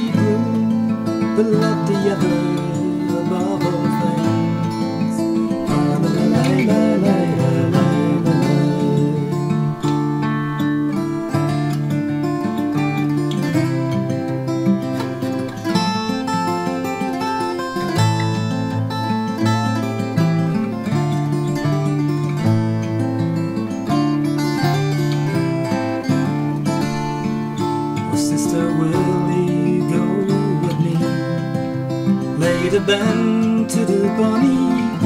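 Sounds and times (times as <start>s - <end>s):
acoustic guitar picked melody: 0.0s - 35.0s.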